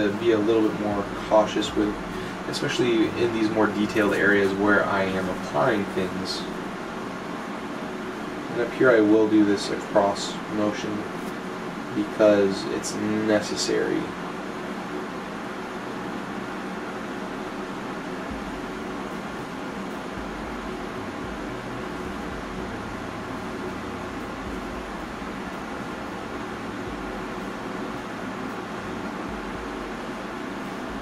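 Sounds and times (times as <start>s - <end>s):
steady background hiss: 0.0s - 31.0s.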